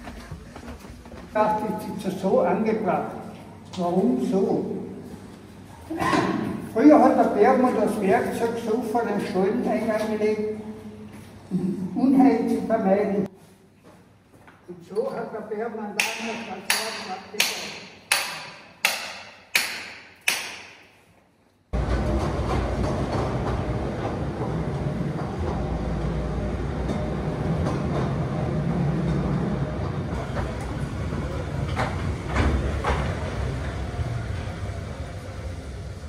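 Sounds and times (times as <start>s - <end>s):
mine train rumbling in tunnel: 0.0s - 2.9s, 21.7s - 36.0s
hammer striking chisel on rock: 16.0s - 20.8s.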